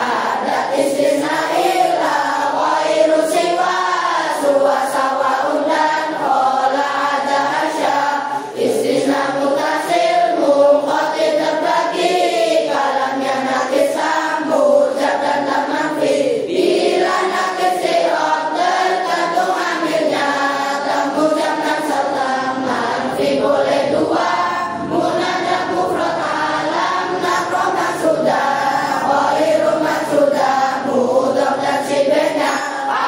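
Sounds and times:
children singing in unison: 0.0s - 33.0s.

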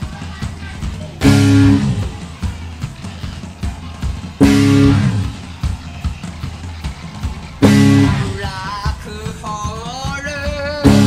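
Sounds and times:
drum beats: 0.0s - 11.0s
rock band full hit: 1.0s - 2.9s, 3.6s - 6.4s, 7.3s - 9.0s, 10.8s - 11.0s
low bass line: 1.2s - 2.2s, 4.4s - 5.5s, 7.6s - 8.5s.

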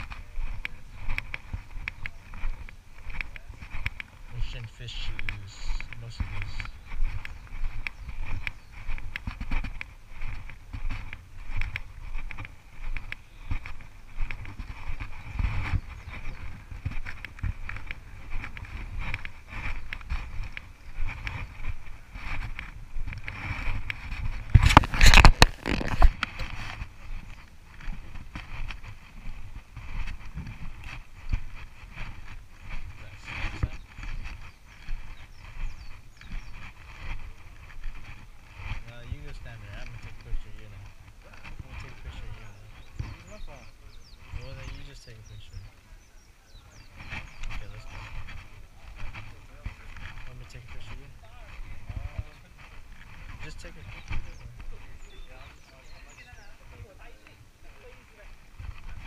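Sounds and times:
footsteps on paved path: 0.0s - 59.0s.

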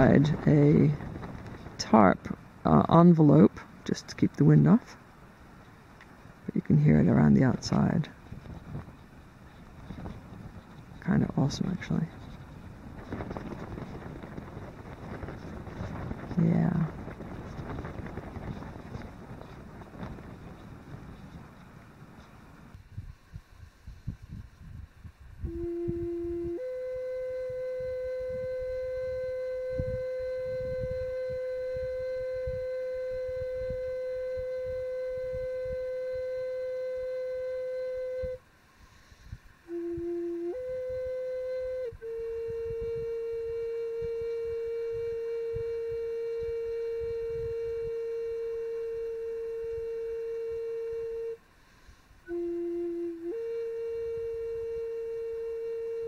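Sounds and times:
low gusting wind rumble: 0.0s - 56.0s
flute long held notes: 25.3s - 56.0s.

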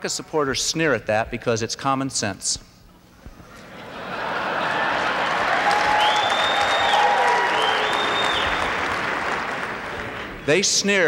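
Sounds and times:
audience applauding: 4.2s - 10.6s
high held calls: 5.5s - 10.5s.

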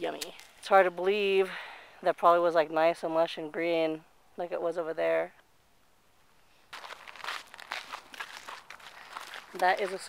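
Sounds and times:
footsteps crunching on sand: 6.7s - 10.0s.

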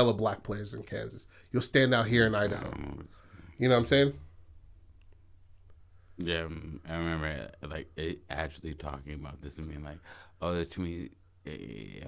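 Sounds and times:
man speaking: 0.0s - 4.3s, 6.2s - 12.0s
faint low hum: 0.0s - 12.0s.

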